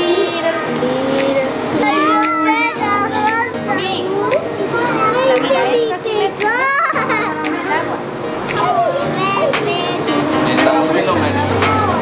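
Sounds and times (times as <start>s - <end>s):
children's excited voices: 0.0s - 7.9s, 8.5s - 10.3s
background music: 0.0s - 12.0s
children laughing: 6.4s - 7.8s.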